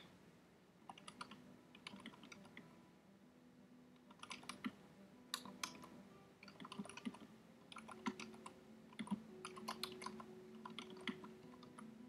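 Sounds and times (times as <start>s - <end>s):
faint keyboard typing: 0.8s - 2.7s, 4.0s - 12.0s.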